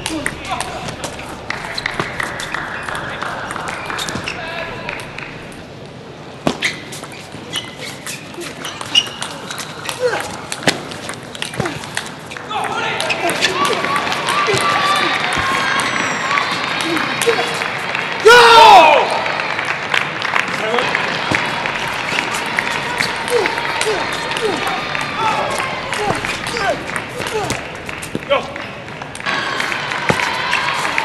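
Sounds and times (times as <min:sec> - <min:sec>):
murmur of voices: 0:00.0 - 0:06.4, 0:07.3 - 0:31.0.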